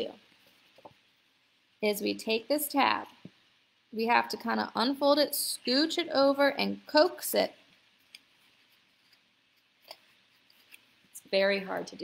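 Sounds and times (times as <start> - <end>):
paper being handled and folded: 7.7 - 11.1.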